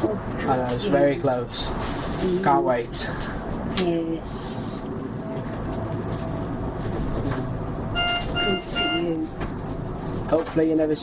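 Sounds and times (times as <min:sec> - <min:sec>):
road and engine rumble: 0:00.0 - 0:11.0
short electronic beeps: 0:07.9 - 0:09.2.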